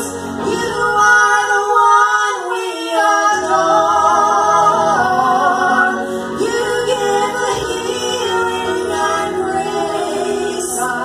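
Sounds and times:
women singing a hymn duet: 0.0 - 11.0.

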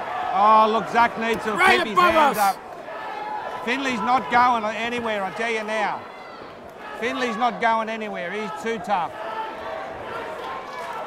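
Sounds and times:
crowd din: 1.1 - 2.7
faint shouts: 1.4 - 2.6.

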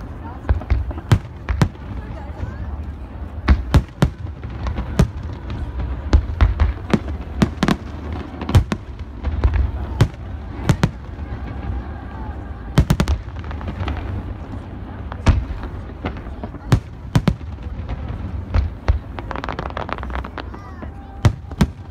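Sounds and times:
fireworks bursting: 0.0 - 21.9.

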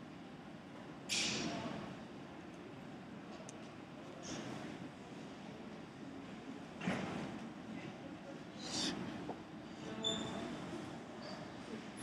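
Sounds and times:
large room background noise: 0.0 - 12.0
short high-pitched squeak: 10.0 - 10.5.

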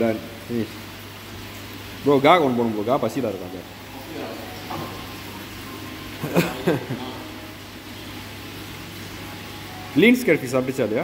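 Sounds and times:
aquarium equipment humming: 0.0 - 11.0.

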